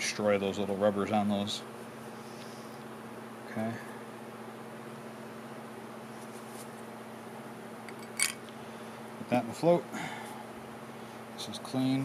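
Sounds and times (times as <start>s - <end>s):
low workshop hum: 0.0s - 12.0s.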